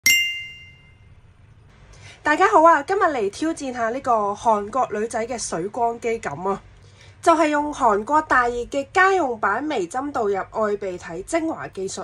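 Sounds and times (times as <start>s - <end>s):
bright bell-like ding: 0.0s - 1.1s.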